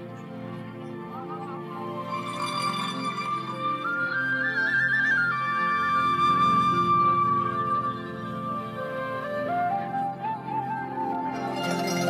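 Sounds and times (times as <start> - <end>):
high melody line: 1.8 - 4.8, 11.3 - 12.0.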